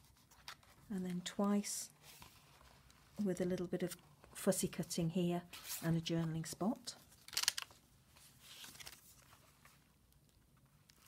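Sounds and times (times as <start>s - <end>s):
paper pages rustling: 0.0s - 3.3s, 5.5s - 11.0s.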